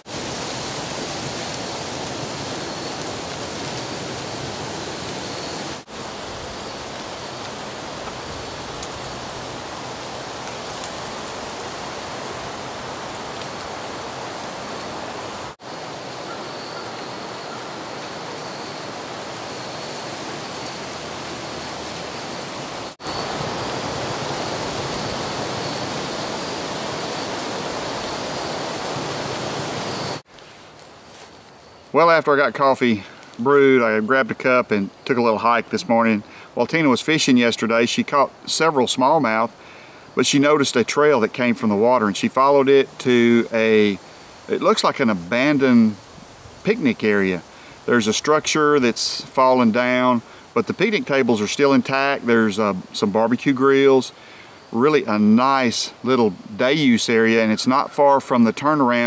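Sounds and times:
stream rushing over rapids: 0.0 - 30.3.

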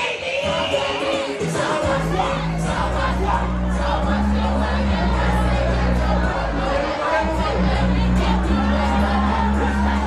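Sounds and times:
crowd singing and shouting: 0.0 - 10.0
loud club music: 0.0 - 10.0
heavy bassline: 0.4 - 10.0.

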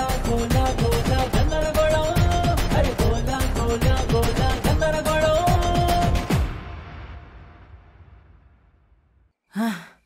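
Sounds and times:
background music: 0.0 - 7.0
person sighing: 9.5 - 10.0.

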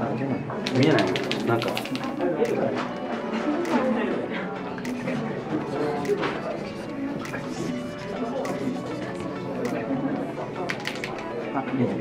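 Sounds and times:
marker pen scratching on paper: 1.0 - 2.2, 5.6 - 9.9
people talking: 3.5 - 12.0.

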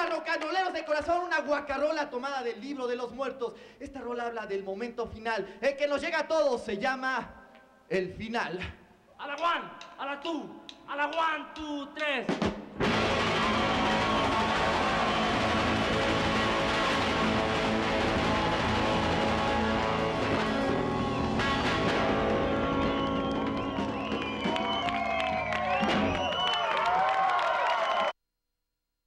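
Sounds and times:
live rock band playing: 12.8 - 26.3.

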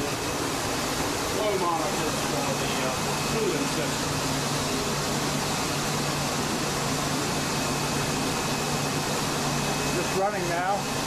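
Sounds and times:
cooling water rushing: 0.0 - 11.0.

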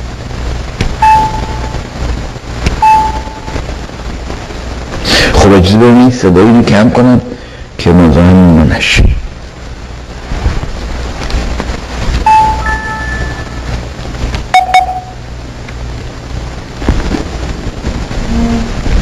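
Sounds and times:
low rumbling noise: 0.0 - 19.0
mobile phone beeps: 1.0 - 1.7, 2.8 - 3.6, 12.3 - 13.6, 14.5 - 15.2.

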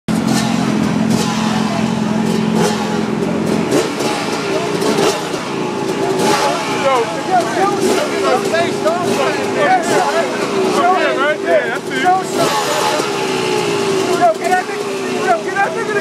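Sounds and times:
crowd talking and shouting: 0.1 - 16.0
dirt bike engine at low revs: 0.1 - 16.0.

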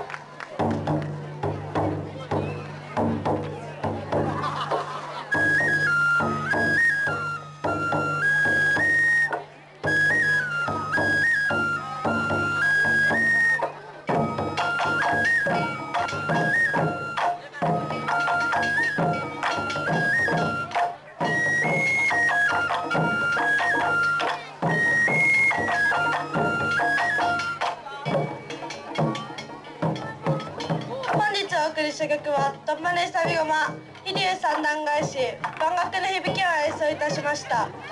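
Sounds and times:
bamboo flute melody: 0.0 - 37.9
taiko drums playing: 0.6 - 37.9.

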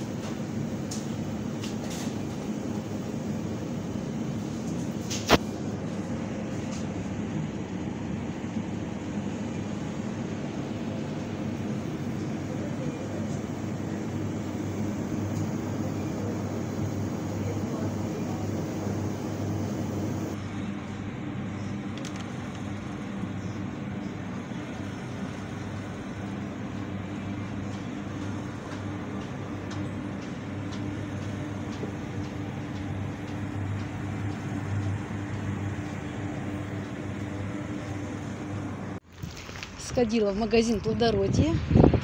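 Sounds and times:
refrigerated display cases humming: 0.0 - 39.1.

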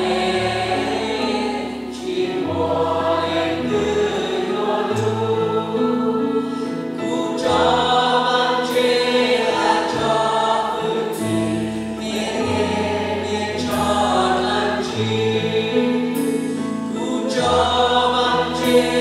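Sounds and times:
voices singing together: 0.0 - 19.0
worship band playing: 0.0 - 19.0.

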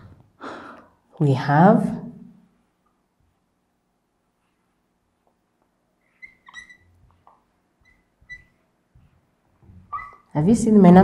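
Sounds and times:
marker squeaking on a whiteboard: 6.0 - 10.4.

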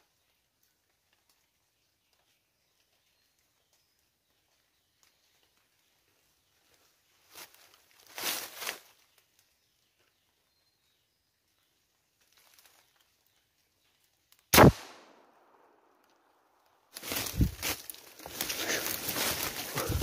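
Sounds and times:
rustling through dry leaves: 6.4 - 9.5, 12.2 - 13.2, 16.9 - 20.0
gunshot with echoing tail: 14.6 - 15.7.

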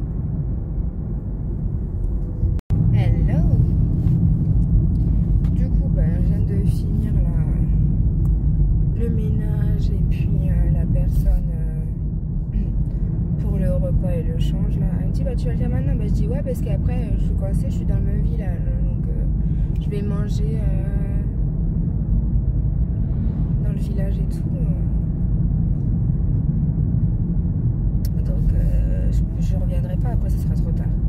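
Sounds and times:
car engine and tyres rumbling: 0.0 - 31.0.

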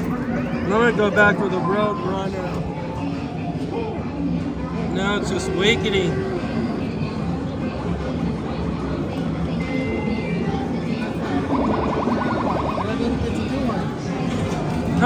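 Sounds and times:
game-machine music: 11.4 - 13.1.

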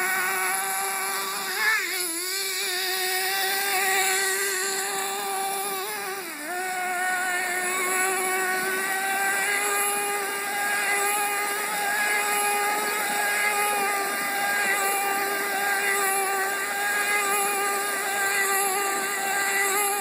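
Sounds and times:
small nitro engine buzzing: 0.0 - 20.0.

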